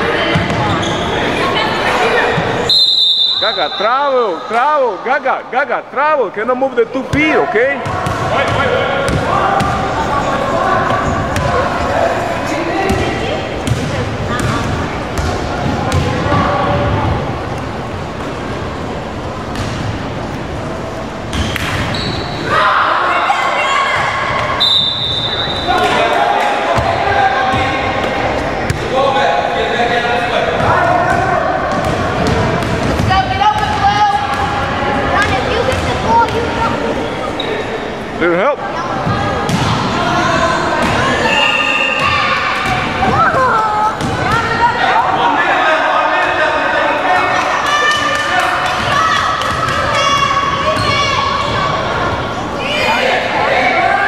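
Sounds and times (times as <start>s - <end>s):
voices calling and chattering: 0.0s - 54.0s.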